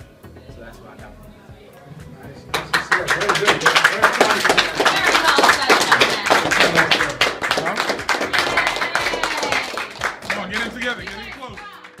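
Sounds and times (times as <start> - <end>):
group clapping: 2.5 - 12.0.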